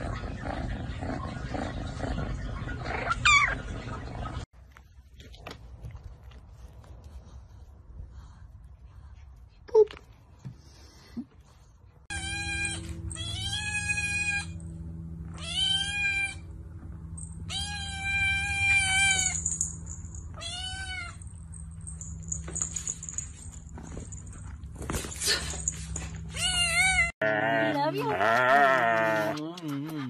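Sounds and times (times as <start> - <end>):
steady low hum: 11.0 - 27.1
kitten meowing: 15.4 - 16.4.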